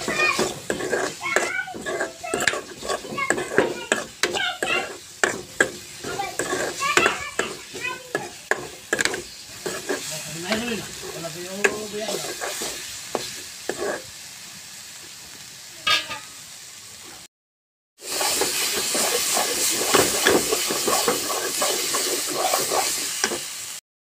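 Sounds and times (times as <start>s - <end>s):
metal spatula scraping a pan: 0.0s - 14.1s, 15.9s - 16.3s, 18.0s - 23.6s
light sizzle: 0.0s - 17.3s, 18.0s - 23.8s.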